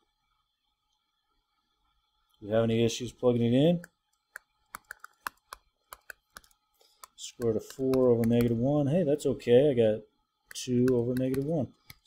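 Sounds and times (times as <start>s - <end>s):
stylus tapping on a touchscreen: 3.8s - 8.6s, 10.5s - 12.0s.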